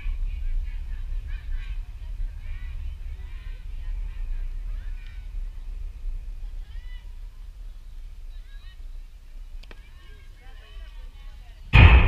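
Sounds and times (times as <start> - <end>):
steady low rumble: 0.0 - 9.6, 11.7 - 12.0.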